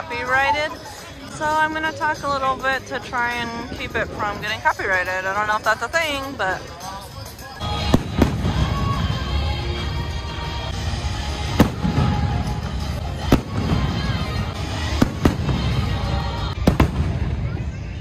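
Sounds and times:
show music: 5.2 - 17.4.

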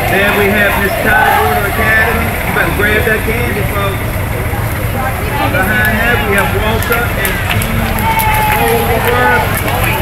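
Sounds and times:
people talking indistinctly: 0.0 - 10.0
steady low rumble: 0.0 - 10.0.

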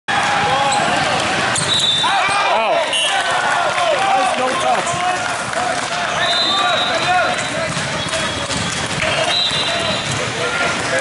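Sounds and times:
crowd shouting and cheering: 0.1 - 11.0
shoe squeaks: 1.6 - 2.5, 6.1 - 10.3.

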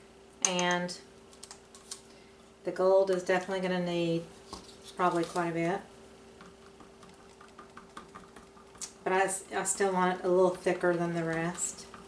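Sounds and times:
faint steady hum: 0.0 - 12.0
plastic cup and stick ticking: 6.4 - 9.0.

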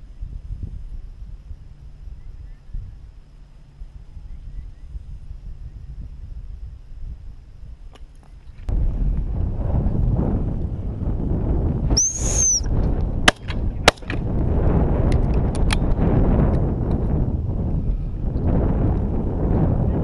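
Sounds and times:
wind buffeting microphone: 0.0 - 20.0
gundog whistle blast: 11.9 - 12.7.

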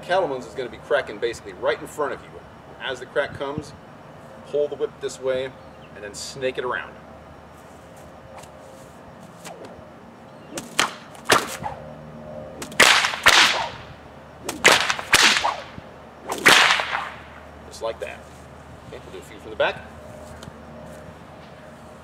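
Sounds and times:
whip swishing through air: 9.3 - 9.8, 10.5 - 11.9, 12.6 - 17.4
bullwhip cracking: 9.4 - 9.8, 10.5 - 11.8, 12.6 - 17.4.

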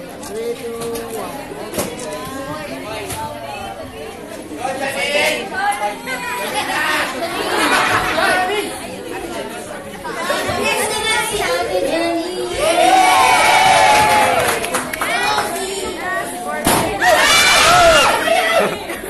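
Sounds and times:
crowd chatter in echoing room: 0.0 - 19.0.

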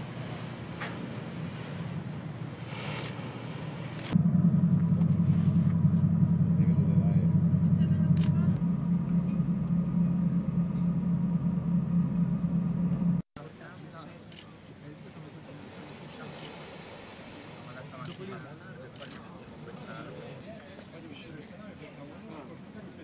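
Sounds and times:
low engine rumble: 0.0 - 20.2
water: 0.0 - 23.0
wind: 0.0 - 23.0.

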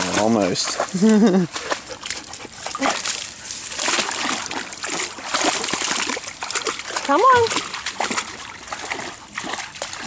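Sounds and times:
dog splashing in water: 0.0 - 10.0.

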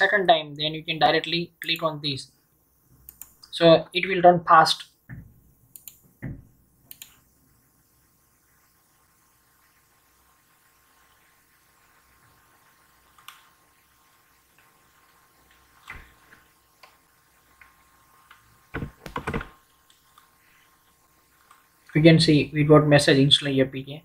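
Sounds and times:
computer mouse clicks: 3.0 - 3.5, 5.7 - 6.0, 6.9 - 7.2, 13.1 - 13.5
low desk thump: 18.7 - 19.5.

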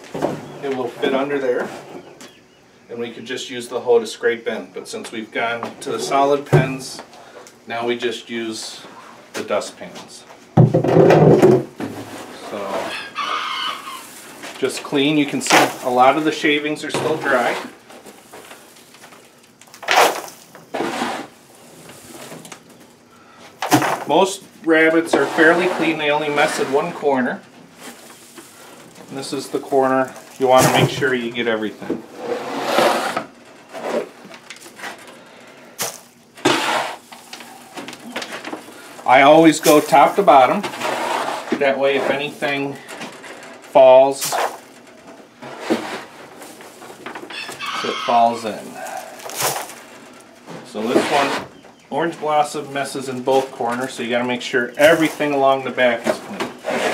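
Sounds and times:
metal dustpan scraping wooden floor: 10.8 - 19.2, 19.8 - 22.5, 23.6 - 27.2, 27.8 - 35.2, 35.8 - 43.5, 44.2 - 51.6, 54.8 - 56.9
rooster crowing: 12.8 - 14.1, 47.3 - 49.2.

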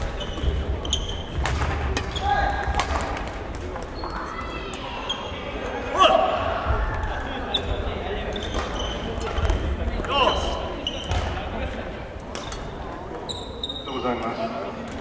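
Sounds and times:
sneakers squeaking on wooden floor: 0.0 - 2.5, 3.8 - 5.4, 7.5 - 11.4, 12.4 - 14.1.

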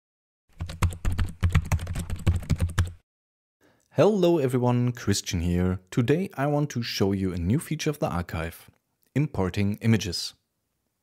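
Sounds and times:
typing keystrokes: 0.6 - 3.0.

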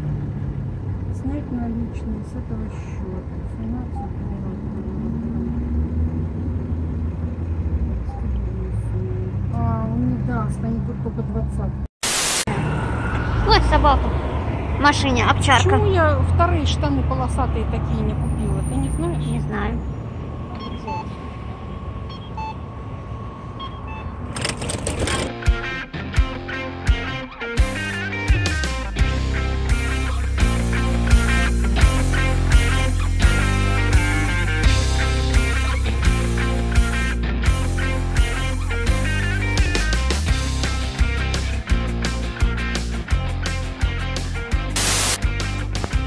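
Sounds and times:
low traffic rumble: 0.0 - 11.9, 12.5 - 26.1, 28.8 - 46.0
rock music with electric guitar: 25.3 - 46.0
vehicle engine running: 28.9 - 46.0.

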